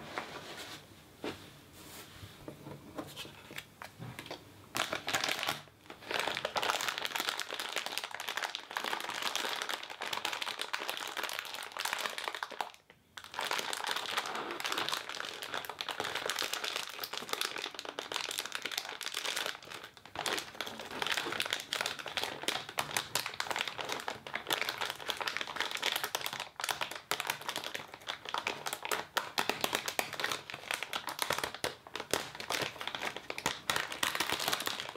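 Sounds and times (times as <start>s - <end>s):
plastic wrapper crinkling: 3.2s - 34.9s.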